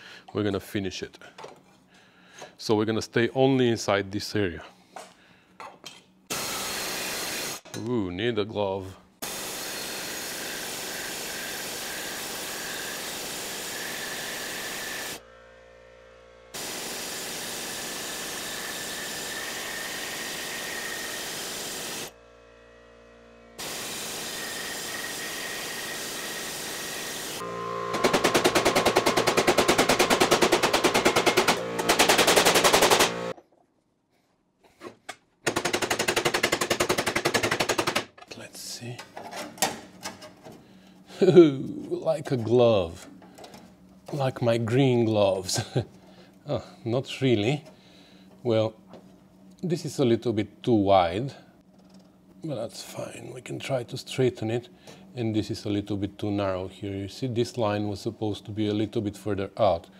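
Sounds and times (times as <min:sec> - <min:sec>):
hammer pounding sheet steel: 0:27.9 - 0:33.4.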